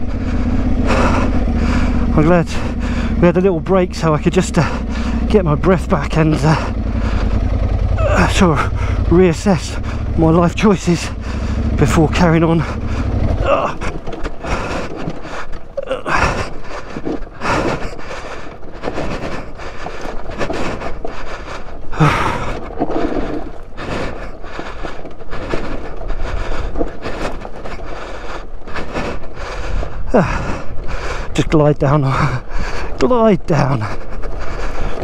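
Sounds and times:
motorcycle knocks and rattles: 0.0 - 21.3, 21.9 - 27.9
tyres crunching over gravel: 0.0 - 35.0.

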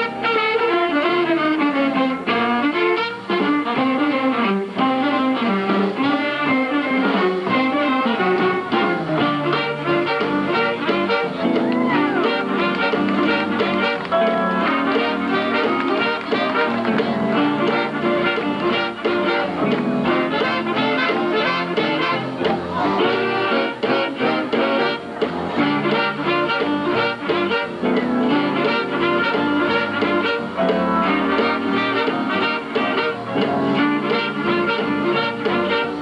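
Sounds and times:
western swing band playing: 0.0 - 36.0.

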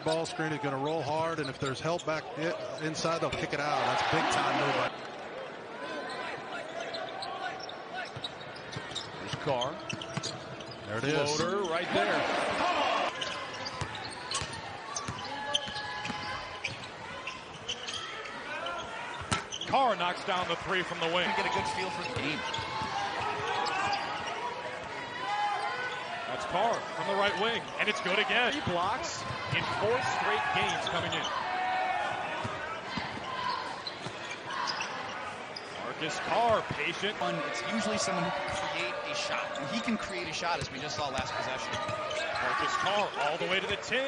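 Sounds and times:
arena crowd murmur: 0.0 - 44.0
sneakers squeaking: 6.0 - 12.4, 13.1 - 20.2, 20.8 - 44.0.

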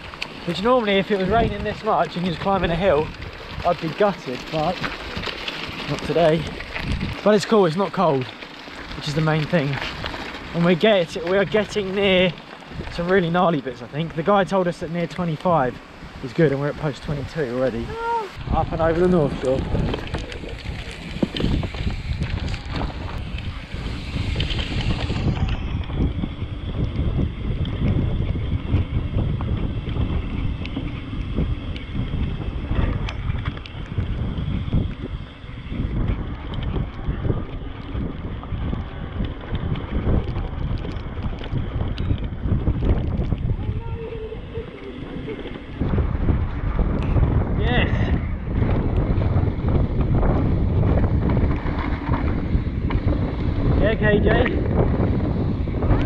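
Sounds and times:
bike rattling and knocking: 0.0 - 56.0
wind buffeting microphone: 0.0 - 56.0.

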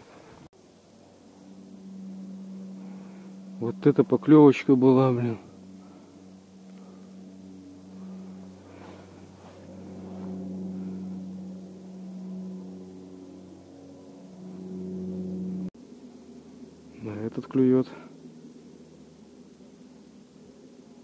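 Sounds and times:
low motor hum: 0.0 - 21.0.

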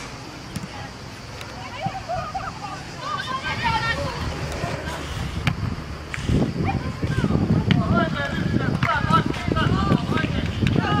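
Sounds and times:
young players shouting: 1.6 - 5.1.

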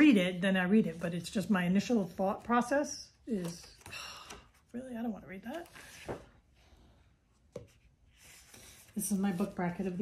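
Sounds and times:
paper notebook rustling: 5.4 - 6.4, 7.5 - 10.0.

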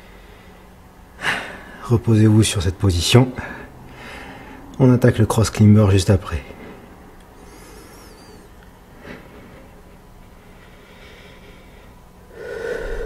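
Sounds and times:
person breathing hard: 0.0 - 1.8, 3.4 - 4.7, 6.5 - 13.0.

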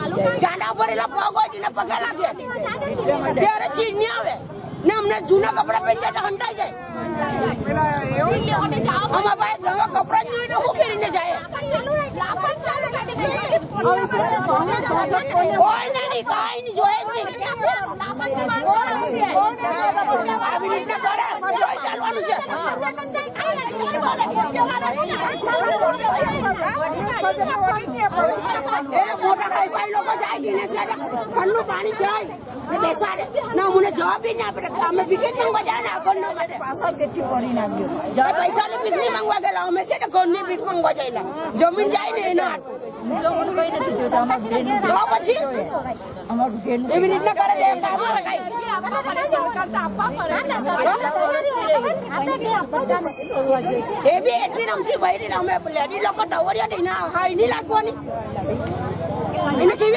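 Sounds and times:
women talking over one another: 0.0 - 59.9.

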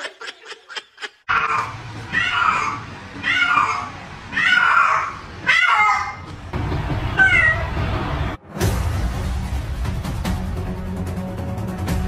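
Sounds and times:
cat meowing: 1.3 - 6.3, 7.2 - 7.7.

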